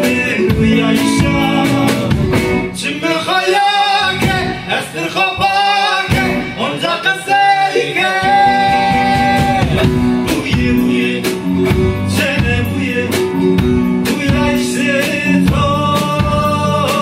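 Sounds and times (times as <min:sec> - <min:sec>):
live band with lute and guitars: 0:00.0 - 0:17.0
man singing: 0:00.0 - 0:17.0.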